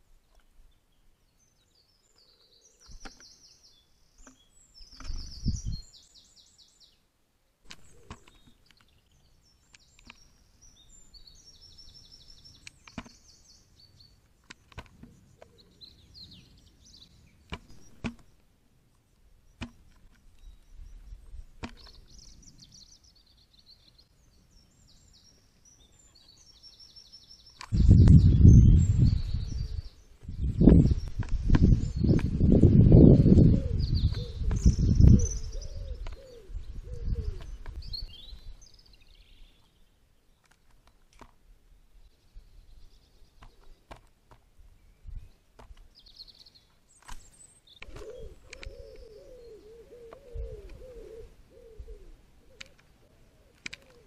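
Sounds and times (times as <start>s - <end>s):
small birds chirping: 0.0s - 7.1s, 7.7s - 41.2s, 41.9s - 54.0s
bird calling repeated low notes: 25.0s - 39.6s, 47.7s - 54.0s.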